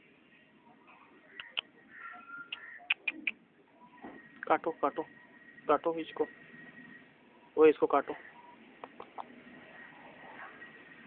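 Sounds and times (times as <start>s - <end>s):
bird chirps: 1.2s - 7.0s.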